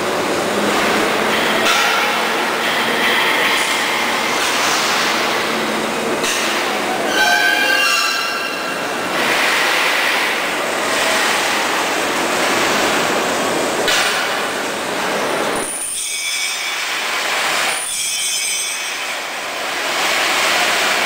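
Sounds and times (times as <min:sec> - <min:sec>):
loud machinery noise: 0:00.0 - 0:21.0
high metallic squeal: 0:06.9 - 0:09.0, 0:15.6 - 0:16.8, 0:17.7 - 0:19.1.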